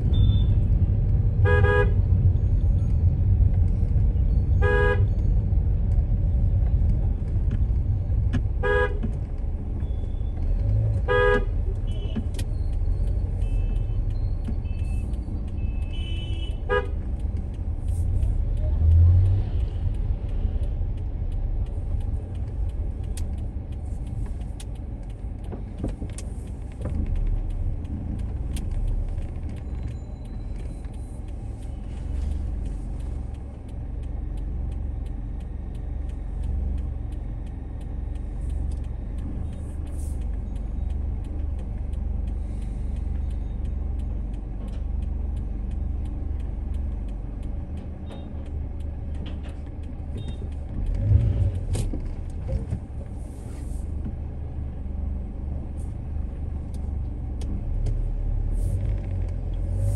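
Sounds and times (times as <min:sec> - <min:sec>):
car driving rumble from inside: 0:00.0 - 0:59.9
car horn toots: 0:01.4 - 0:02.0, 0:04.6 - 0:05.1, 0:08.6 - 0:09.0, 0:11.1 - 0:12.2.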